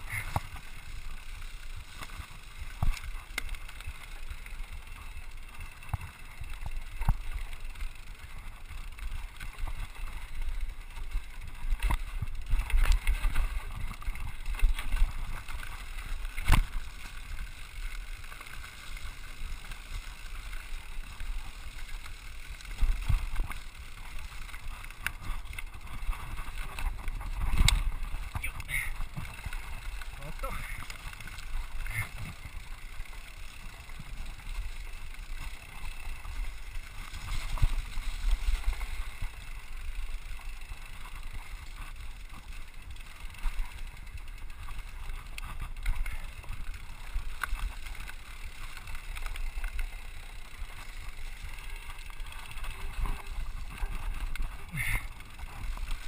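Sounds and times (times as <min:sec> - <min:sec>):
bike clattering over roots and rocks: 0:00.0 - 0:56.0
bike tyres rolling on dirt trail: 0:00.0 - 0:56.0
wind rumbling on microphone: 0:22.5 - 0:32.9.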